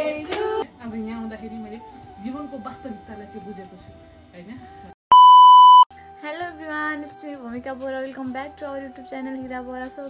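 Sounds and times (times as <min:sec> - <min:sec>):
high test tone beep: 0:05.1 - 0:05.9.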